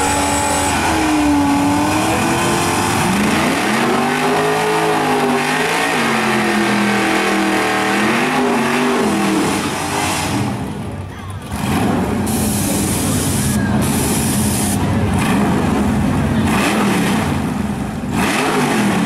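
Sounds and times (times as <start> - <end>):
car engine revving hard: 0.0 - 10.7, 13.8 - 19.0.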